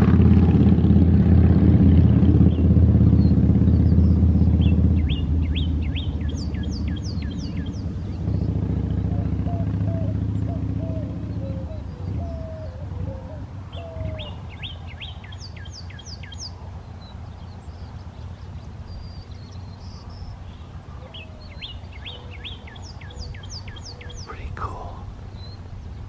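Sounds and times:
dove cooing: 9.1s - 14.4s.

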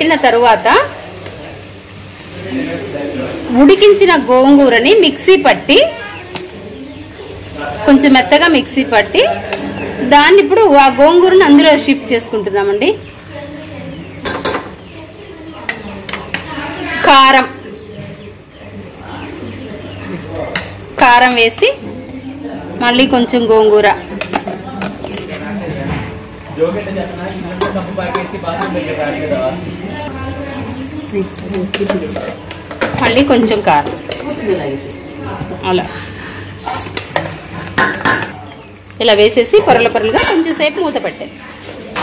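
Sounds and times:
utensil scraping metal pot: 9.4s - 10.5s, 24.1s - 26.0s, 31.5s - 34.5s
bird calling: 12.3s - 21.0s.

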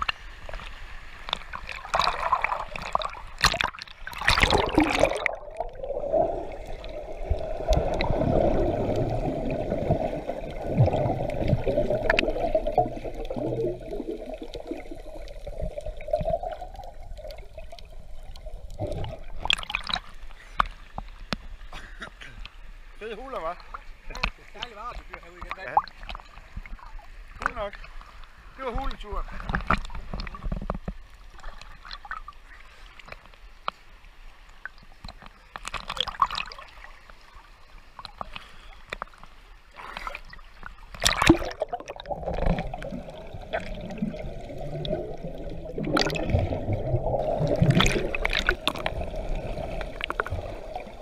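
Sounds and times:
muffled water sloshing: 0.0s - 33.5s, 34.4s - 51.0s.

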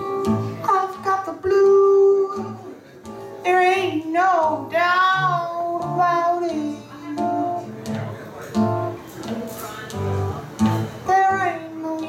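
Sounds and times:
woman singing blues: 0.0s - 2.8s, 3.4s - 7.8s, 9.9s - 12.0s
acoustic guitar: 0.0s - 12.0s.

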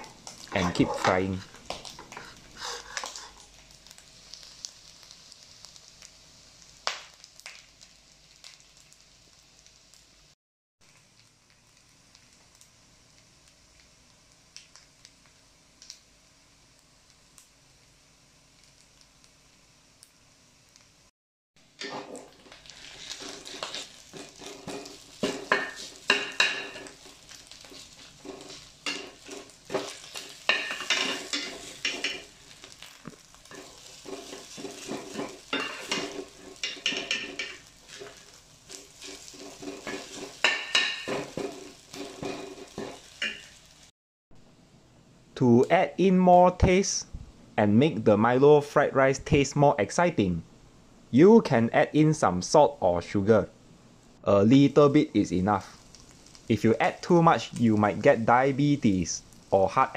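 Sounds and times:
metal spatula scraping a wok: 21.8s - 32.3s, 33.4s - 43.6s.

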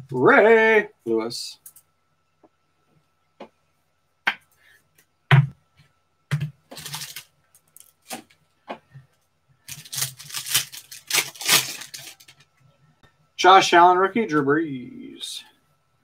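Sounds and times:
foil wrappers crinkling and tearing: 6.7s - 8.3s, 9.6s - 12.5s.

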